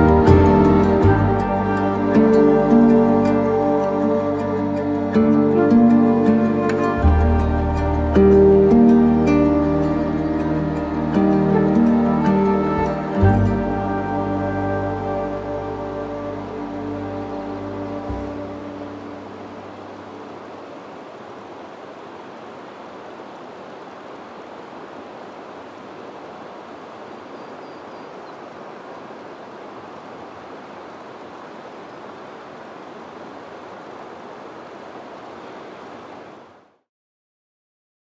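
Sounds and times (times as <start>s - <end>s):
background music: 0.0s - 20.2s.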